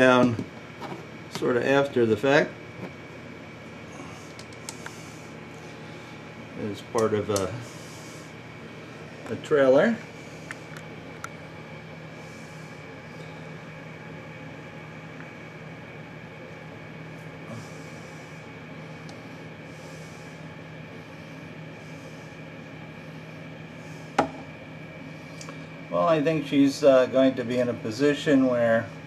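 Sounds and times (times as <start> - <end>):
faint high whine: 0.0 - 29.0
room hum: 0.0 - 29.0.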